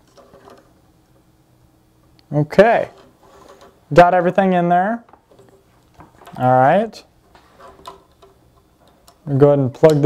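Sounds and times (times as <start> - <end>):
wires clicking into terminal clips: 5.1 - 6.7, 7.3 - 10.0.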